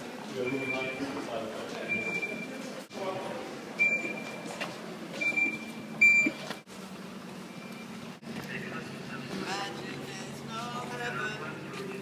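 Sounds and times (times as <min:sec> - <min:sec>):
crowd chatter: 0:00.0 - 0:05.2, 0:08.2 - 0:12.0
voices: 0:00.0 - 0:05.6, 0:08.2 - 0:12.0.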